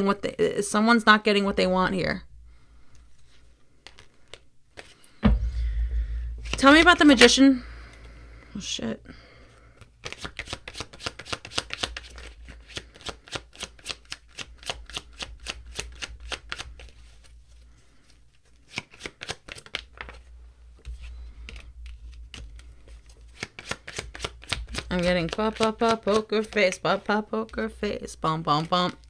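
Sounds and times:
cards being shuffled: 0:03.1 - 0:05.1, 0:09.8 - 0:29.0.

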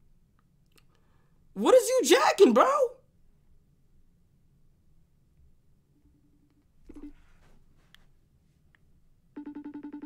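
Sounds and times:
phone ringing electronic trill: 0:09.4 - 0:10.0.

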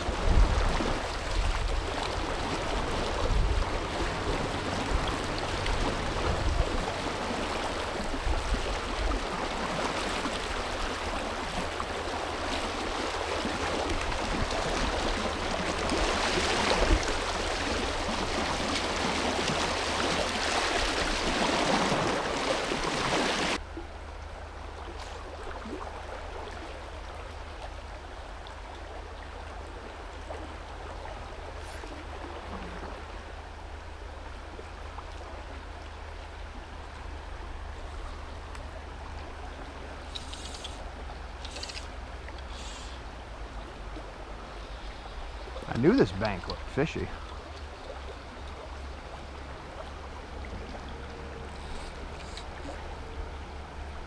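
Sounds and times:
quieter flowing water: 0:00.0 - 0:54.0
river water rushing: 0:00.0 - 0:54.0.

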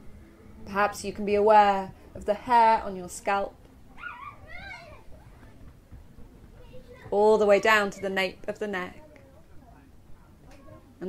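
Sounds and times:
animal whining: 0:04.0 - 0:04.9.

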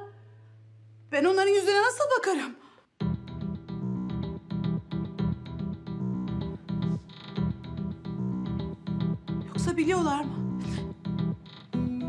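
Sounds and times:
plucked notes over bass line: 0:03.0 - 0:12.0.

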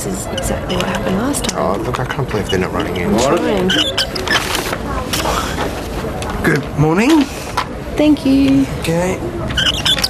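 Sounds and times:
people talking: 0:00.0 - 0:03.9.

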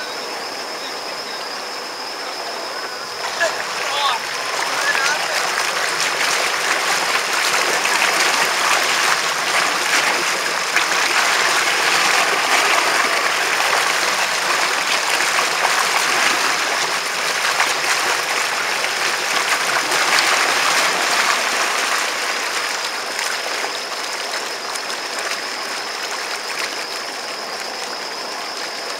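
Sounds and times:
rushing hiss of water wake: 0:00.0 - 0:28.9.

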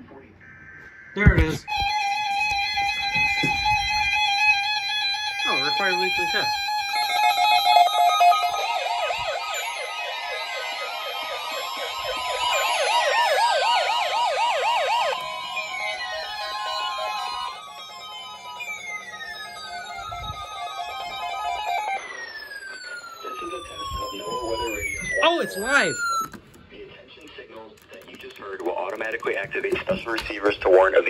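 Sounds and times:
falling alarm chirps: 0:00.4 - 0:26.5
warbling alarm tones: 0:00.4 - 0:26.6.

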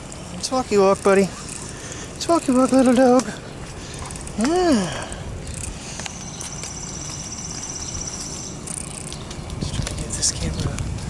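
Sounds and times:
steady low rumble: 0:03.2 - 0:11.0.

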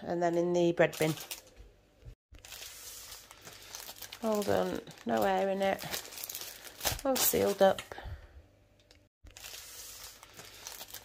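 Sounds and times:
plastic bags crinkling: 0:00.8 - 0:01.6, 0:02.3 - 0:08.0, 0:09.2 - 0:11.0.

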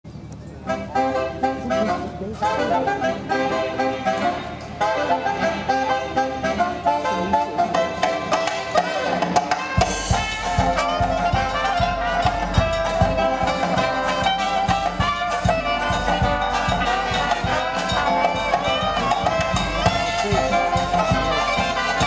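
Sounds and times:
jazz band horns playing: 0:00.6 - 0:22.0
drums with steady beat: 0:07.8 - 0:22.0.

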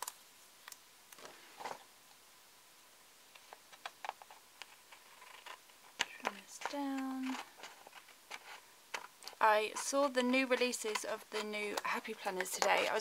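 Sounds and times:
small clicks: 0:00.0 - 0:01.3
paper rustling: 0:03.3 - 0:13.0
scissors snipping paper: 0:09.3 - 0:13.0.

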